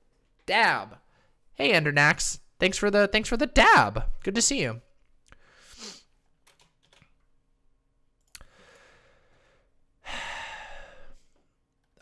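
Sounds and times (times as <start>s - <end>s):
person breathing: 5.3s - 6.2s, 8.4s - 11.4s
person sighing: 10.0s - 11.3s.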